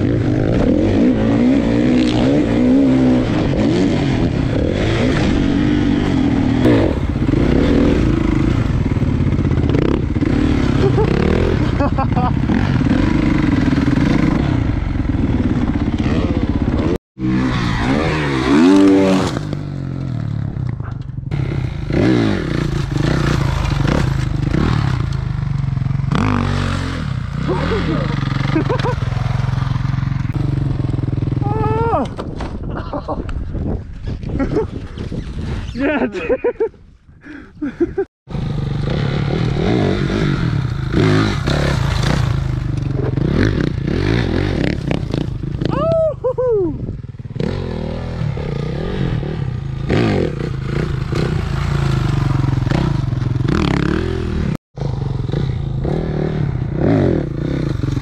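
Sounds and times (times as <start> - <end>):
dirt bike engine revving: 0.0 - 31.7, 38.3 - 46.4, 47.2 - 58.0.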